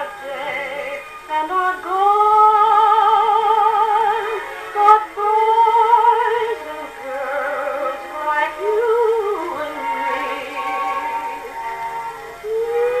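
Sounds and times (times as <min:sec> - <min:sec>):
orchestra: 0:00.0 - 0:13.0
woman singing with vibrato: 0:00.0 - 0:13.0.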